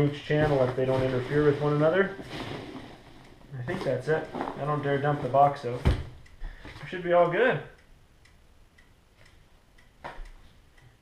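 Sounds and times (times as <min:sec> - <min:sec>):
faint steady ticking: 0:00.0 - 0:11.0.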